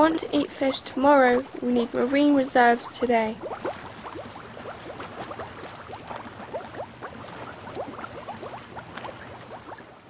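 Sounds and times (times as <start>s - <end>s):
underwater bubbles rising: 0.0s - 10.0s.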